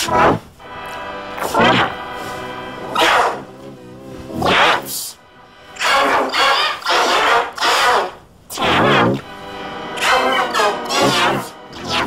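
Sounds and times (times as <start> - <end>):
pitch-shifted yelling: 2.8 - 3.5, 5.8 - 9.3, 9.9 - 12.0.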